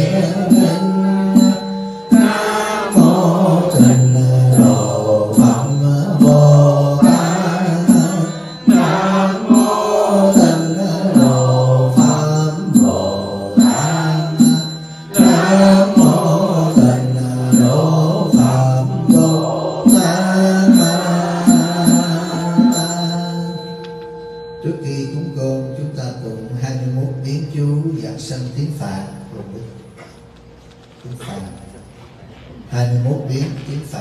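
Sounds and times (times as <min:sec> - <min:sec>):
man chanting into microphone: 0:00.0 - 0:14.5, 0:15.1 - 0:23.5, 0:24.6 - 0:29.7
short rhythmic knocks: 0:00.0 - 0:24.7.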